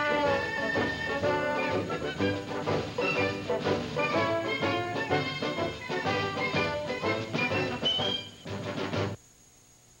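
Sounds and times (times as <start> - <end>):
tv theme music: 0.0 - 9.2
faint hiss: 0.0 - 10.0.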